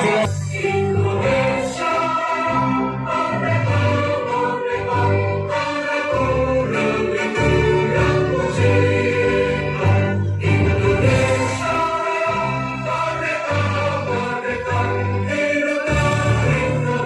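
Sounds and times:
choir singing long notes: 0:00.0 - 0:17.0.

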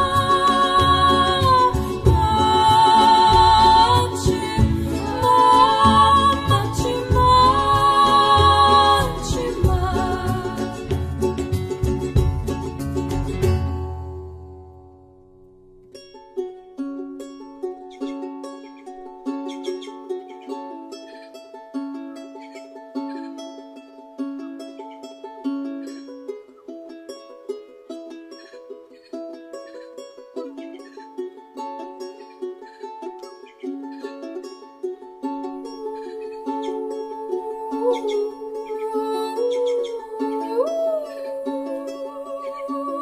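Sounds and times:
fingerpicked lute: 0:00.0 - 0:43.0
woman singing held note: 0:35.8 - 0:43.0.

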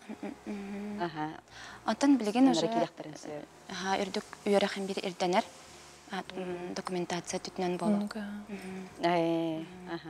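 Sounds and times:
woman humming: 0:00.0 - 0:01.2, 0:07.8 - 0:10.0
woman speaking: 0:00.7 - 0:05.5, 0:06.1 - 0:10.0.

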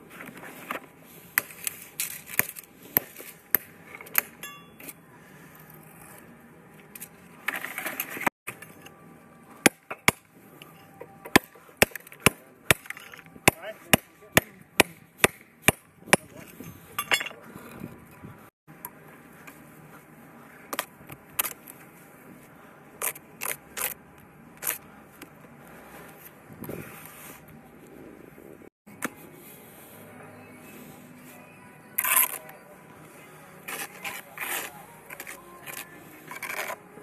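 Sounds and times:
tools clinking in metal bucket: 0:16.4 - 0:17.4.

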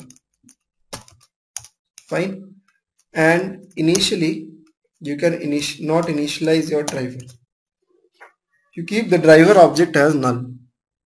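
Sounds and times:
computer keyboard keystrokes: 0:00.0 - 0:02.1.

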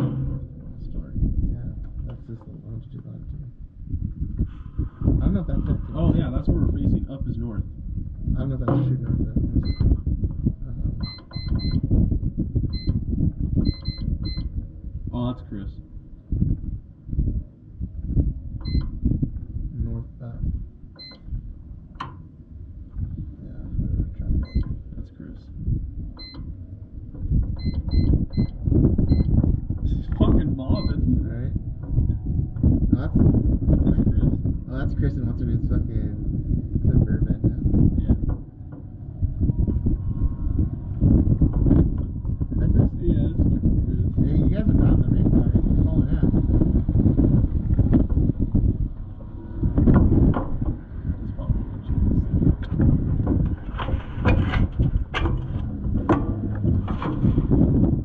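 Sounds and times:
engine and chassis rumble: 0:00.0 - 0:58.0
short electronic beeps: 0:09.6 - 0:09.9, 0:11.0 - 0:11.8, 0:12.7 - 0:12.9, 0:13.7 - 0:14.5, 0:18.6 - 0:18.9, 0:21.0 - 0:21.2, 0:27.6 - 0:29.3, 0:30.7 - 0:31.0.

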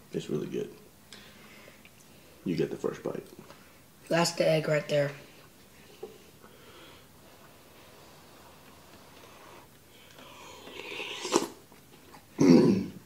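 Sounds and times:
person slurping soup: 0:07.4 - 0:11.6
throaty cough or exhale: 0:12.4 - 0:13.0.

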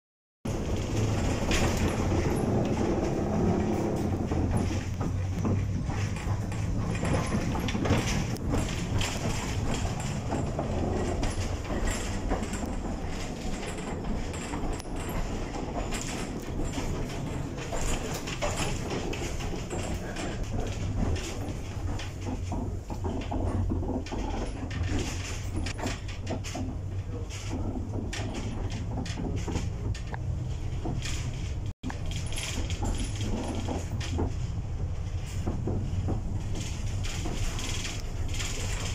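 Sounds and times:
rattling and clattering wheels: 0:00.5 - 0:38.9
tram rumble: 0:00.5 - 0:38.9.

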